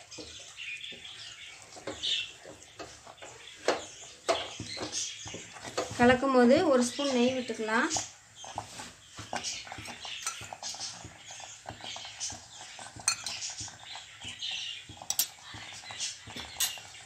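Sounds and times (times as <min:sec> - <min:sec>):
wooden spatula stirring thick food: 0:00.0 - 0:17.0
steel spoon clinking steel bowl: 0:09.8 - 0:11.0, 0:12.9 - 0:13.8, 0:14.9 - 0:15.5, 0:16.2 - 0:17.0.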